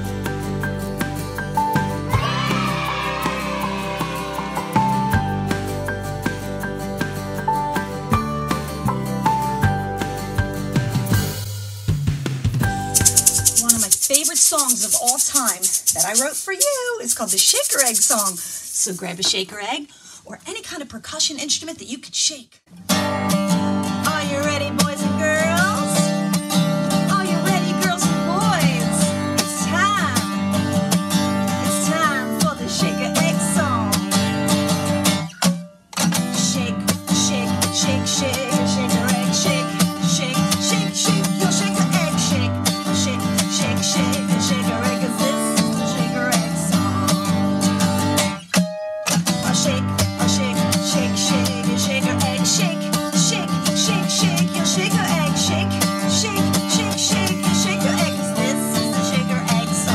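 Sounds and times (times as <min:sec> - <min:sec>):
acoustic guitar strumming: 0:00.0 - 0:11.1, 0:22.8 - 0:59.9
woman singing: 0:13.5 - 0:19.8, 0:23.0 - 0:26.3, 0:27.0 - 0:30.2, 0:31.6 - 0:34.1, 0:36.3 - 0:47.3, 0:49.4 - 0:59.9.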